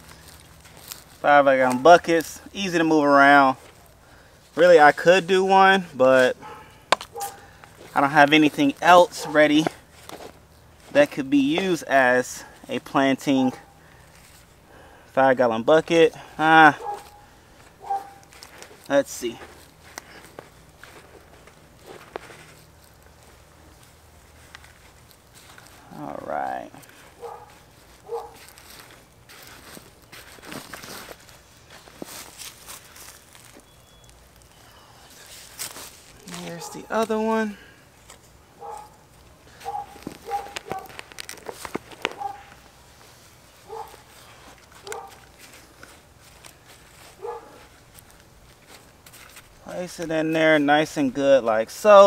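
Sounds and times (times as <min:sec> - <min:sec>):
gloved hand rustling soil: 0:00.0 - 0:52.0.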